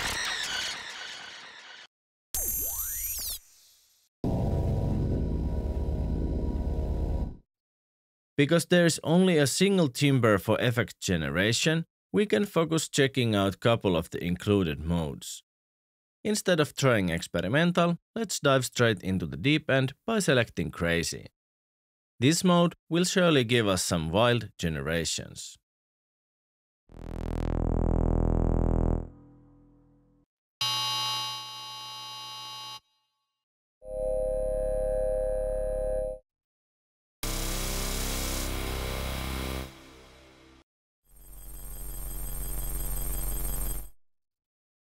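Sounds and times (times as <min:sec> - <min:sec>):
synthesizer low rumble with flutter: 0:04.3 - 0:07.4, 0:26.9 - 0:30.2
held electronic synthesizer tone: 0:26.9 - 0:30.0.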